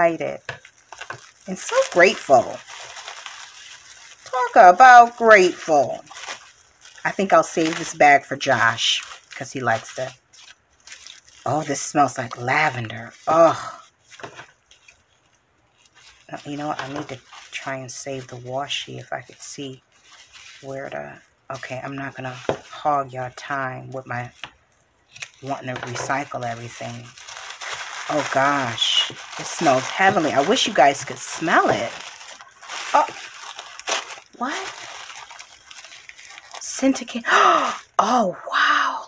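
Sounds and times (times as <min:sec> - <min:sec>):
sharp paper crackle: 0:00.0 - 0:37.1
tissue paper rustling: 0:00.0 - 0:37.9.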